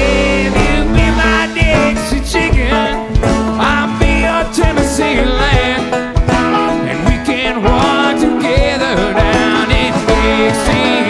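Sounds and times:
banjo: 0.0s - 11.0s
bluegrass band playing: 0.0s - 11.0s
drums keeping a steady beat: 0.0s - 11.0s.

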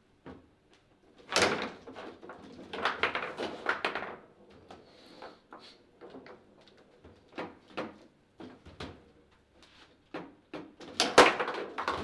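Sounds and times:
foosball ball clattering knocks: 10.2s - 12.0s.

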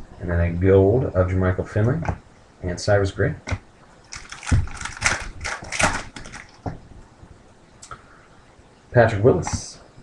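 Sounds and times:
foil wrapper crackling: 4.1s - 6.6s.

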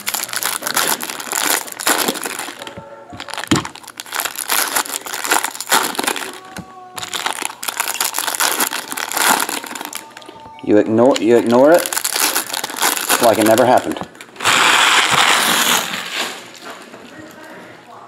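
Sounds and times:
foil wrappers crinkling: 0.0s - 17.6s.

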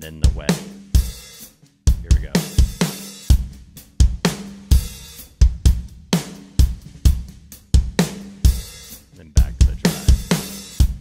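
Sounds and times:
rock drum kit with reverb: 0.0s - 11.0s.

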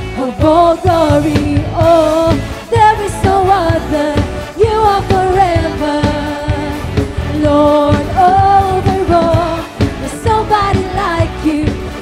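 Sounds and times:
bass guitar: 0.0s - 12.0s
drum kit steady beat: 0.0s - 12.0s
electric guitars: 0.0s - 12.0s
vocalists singing together: 0.0s - 12.0s.

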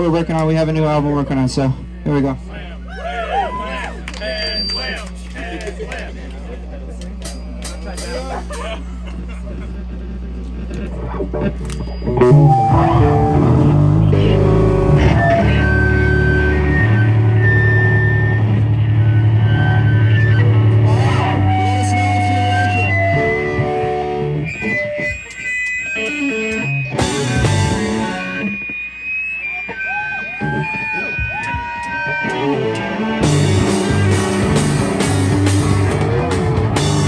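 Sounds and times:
electric guitar lines: 0.0s - 37.0s
live rock band playing: 9.9s - 37.0s.

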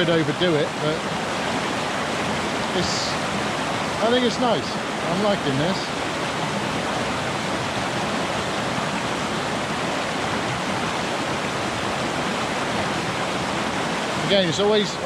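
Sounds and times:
waterfall over rocks: 0.0s - 15.0s.

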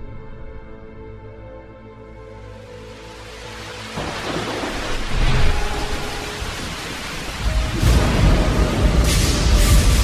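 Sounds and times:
steady rain: 2.4s - 10.0s
thunder rumbling: 4.0s - 10.0s.

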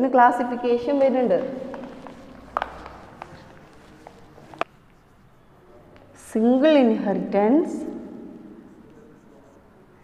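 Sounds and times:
chalk writing on blackboard: 1.8s - 6.1s, 8.5s - 10.0s.

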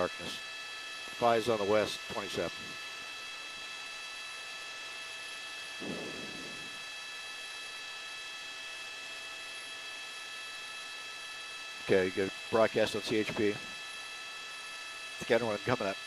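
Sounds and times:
faint high whines: 5.6s - 7.8s
helicopter cabin hiss: 5.8s - 6.8s.

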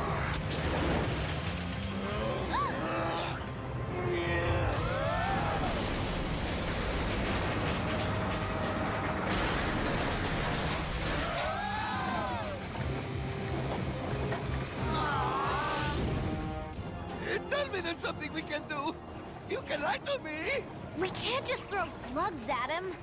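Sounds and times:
action cartoon music: 0.0s - 23.0s.

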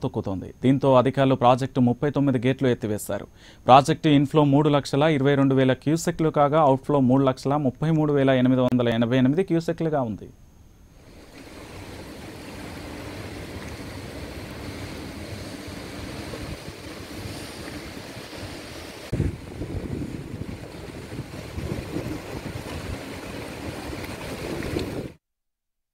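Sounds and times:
water rushing through spillway: 11.0s - 25.2s
wind buffeting microphone: 11.1s - 25.2s.

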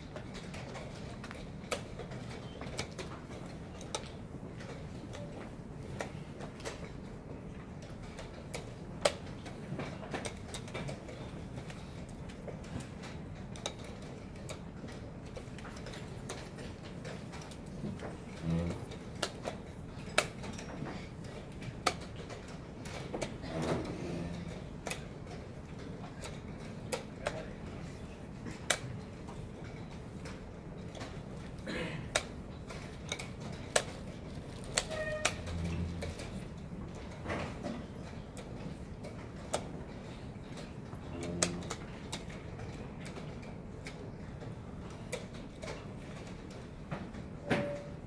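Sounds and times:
low hall hum: 0.0s - 48.0s
low room rumble: 0.0s - 48.0s.

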